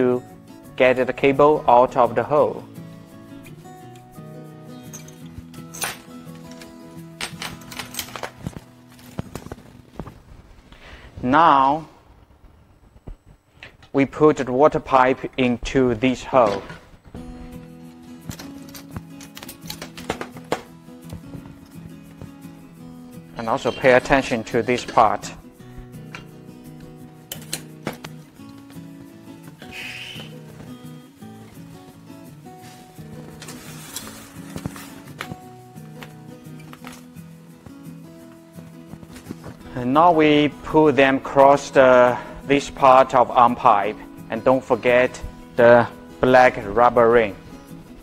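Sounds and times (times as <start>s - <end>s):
quiet background music: 0.0s - 12.0s, 13.2s - 48.0s
clicks and knocks of parts handled: 4.9s - 9.6s, 18.2s - 21.3s, 27.3s - 28.7s
clicks of parts handled: 18.2s - 21.2s, 27.3s - 28.2s.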